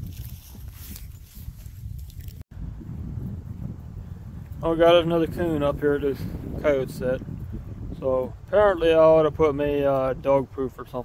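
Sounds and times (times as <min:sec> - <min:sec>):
steps in dry leaves: 0:00.0 - 0:02.4
wind rumbling on microphone: 0:00.0 - 0:11.0.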